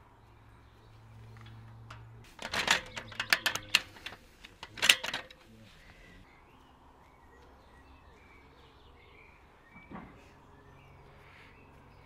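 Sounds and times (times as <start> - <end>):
metal ladder parts clacking: 1.3 - 5.5.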